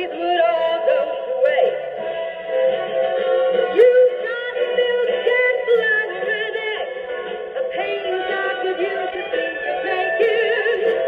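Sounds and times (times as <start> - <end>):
song through tape recorder speaker: 0.0 - 11.0.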